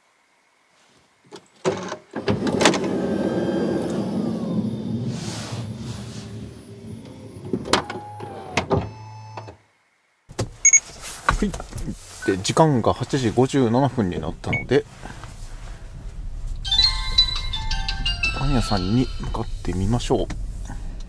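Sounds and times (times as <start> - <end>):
sliding door motor running: 2.2 - 8.8.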